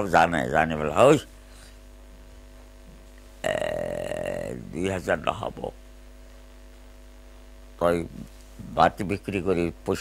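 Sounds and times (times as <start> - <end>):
faint steady hum: 0.0 - 10.0
elderly man's drawn-out voice: 3.4 - 5.8.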